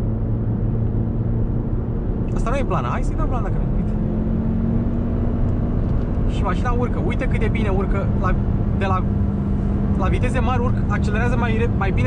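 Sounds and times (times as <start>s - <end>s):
car engine accelerating: 0.0s - 12.0s
road and tyre rumble: 0.0s - 12.0s.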